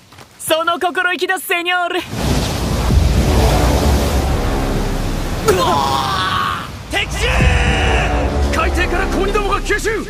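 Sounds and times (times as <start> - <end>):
low rumbling noise: 2.2 - 10.0.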